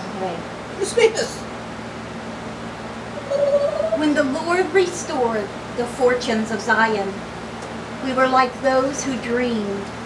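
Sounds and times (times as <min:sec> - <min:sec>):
woman speaking: 0:00.0 - 0:01.5, 0:03.2 - 0:07.2, 0:08.0 - 0:09.9
background hum and hiss: 0:00.0 - 0:10.0.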